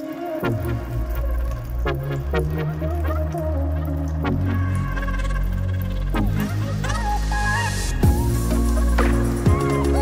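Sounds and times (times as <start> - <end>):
electronic pop music: 0.0 - 10.0.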